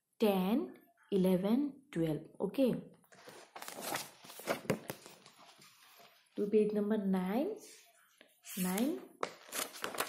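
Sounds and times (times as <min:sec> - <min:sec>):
book paper rustling: 0:03.1 - 0:06.3, 0:08.5 - 0:10.0.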